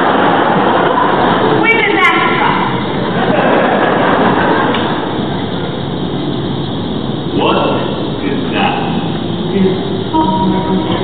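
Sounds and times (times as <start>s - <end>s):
audience laughing and applauding: 0.0s - 1.7s, 3.0s - 5.1s.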